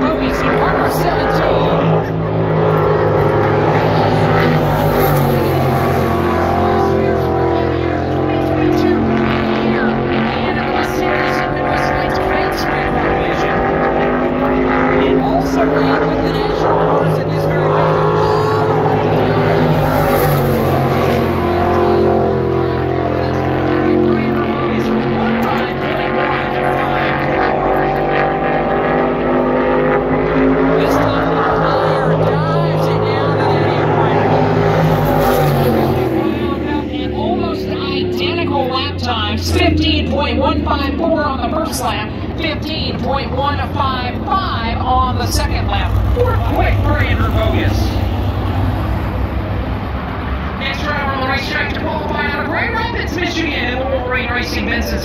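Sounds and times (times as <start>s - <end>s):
race car engine running hard: 0.0s - 55.0s.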